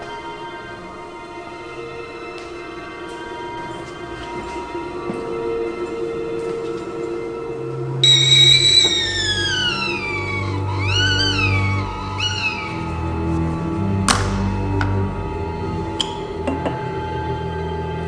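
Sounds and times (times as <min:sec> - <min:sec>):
background music: 0:00.0 - 0:18.0
whistling kettle shrieking: 0:08.0 - 0:13.4.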